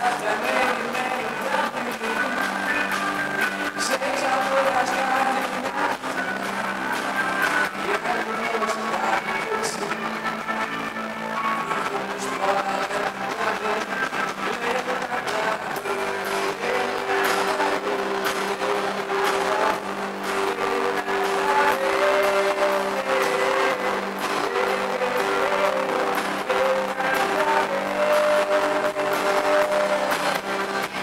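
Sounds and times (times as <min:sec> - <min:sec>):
live band playing: 0:00.0 - 0:31.0.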